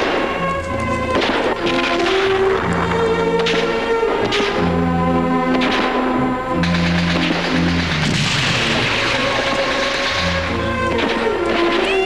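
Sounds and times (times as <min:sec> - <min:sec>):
orchestral film music: 0:00.0 - 0:12.0
explosion or gunfire blast: 0:06.6 - 0:11.8.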